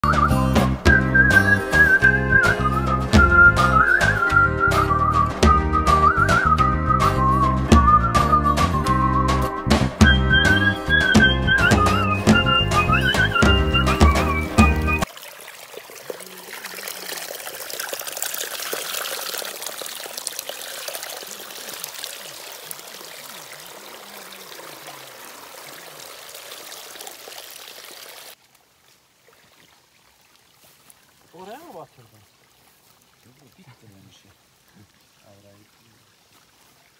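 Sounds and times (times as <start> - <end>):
music melody: 0.0 - 15.1
water trickling among rocks: 15.0 - 36.9.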